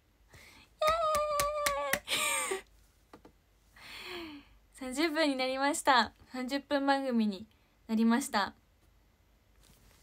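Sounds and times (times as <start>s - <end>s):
woman clapping hands: 0.8s - 2.1s.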